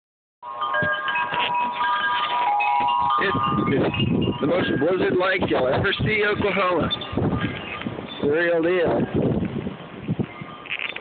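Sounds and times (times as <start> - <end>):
wind chimes ringing: 0.4 - 8.6, 10.2 - 11.0.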